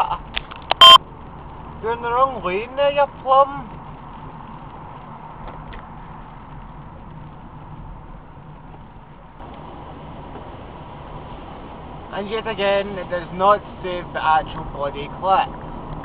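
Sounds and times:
low engine hum: 0.0 - 16.0
tyres on wet tarmac: 0.0 - 16.0.

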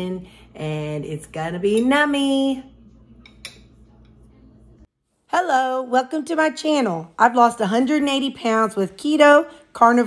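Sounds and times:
metal spoon clinking on ceramic plate: 3.2 - 3.8.

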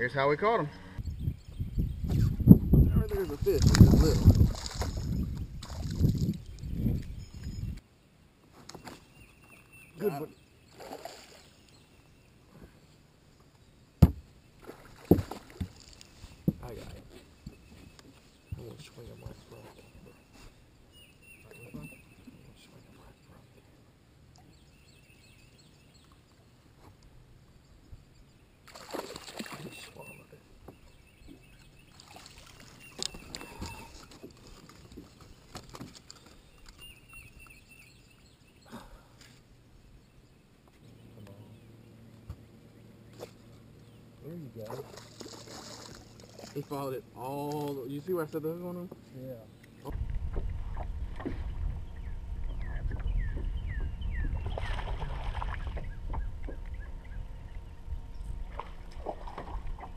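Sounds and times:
water splashing: 3.4 - 6.5, 10.7 - 11.6, 14.6 - 17.1, 28.6 - 30.2, 31.9 - 36.3, 44.5 - 48.0, 54.3 - 56.8, 58.4 - 59.9
knocks on a boat: 14.0 - 14.2.

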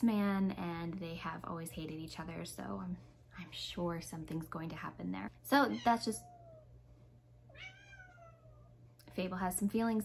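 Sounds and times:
cat meowing: 7.5 - 8.7.

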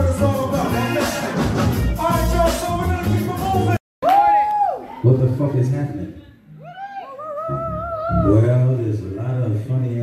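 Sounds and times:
live band music: 0.0 - 3.8.

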